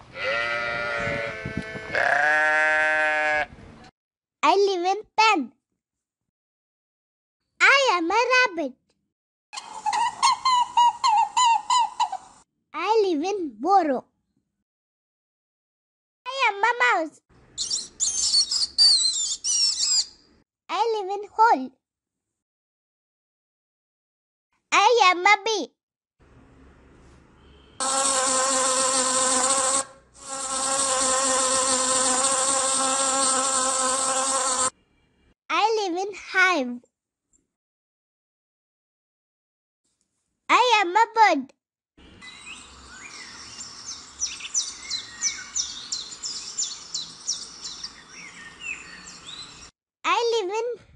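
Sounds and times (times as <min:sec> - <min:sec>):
rabbit squeaky calls: 0:17.6 - 0:20.2
bee buzzing: 0:27.8 - 0:34.7.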